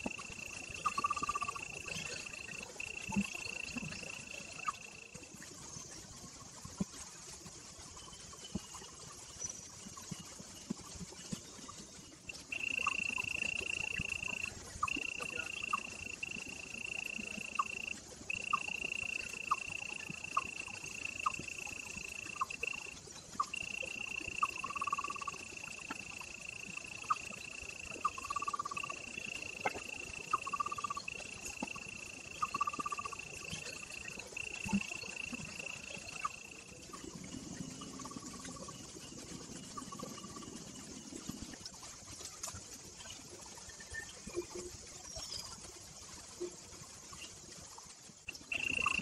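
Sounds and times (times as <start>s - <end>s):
high-pitched insect trill: 0.0s - 49.0s
short chirping calls: 12.3s - 36.8s, 48.3s - 49.0s.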